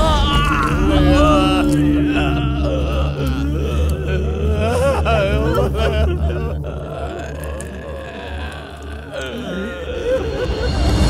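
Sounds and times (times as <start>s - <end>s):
low film score drone: 0.0s - 11.0s
man groaning and sobbing: 0.0s - 11.0s.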